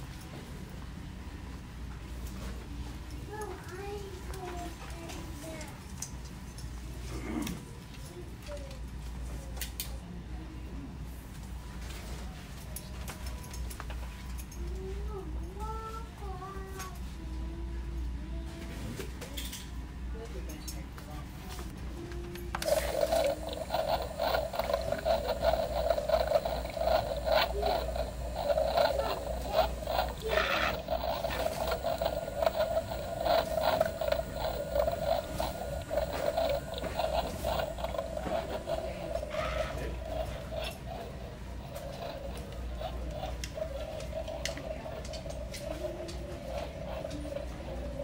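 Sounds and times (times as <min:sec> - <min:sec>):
hum with irregular pulses: 0:22.6 - 0:48.0.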